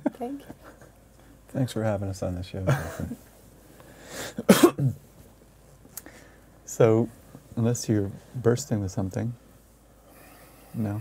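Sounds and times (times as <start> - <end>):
man coughing: 4.3 - 5.0.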